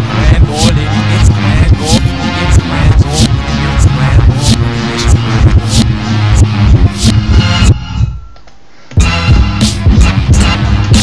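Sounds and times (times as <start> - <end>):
beat-driven music from turntables: 0.0 - 11.0.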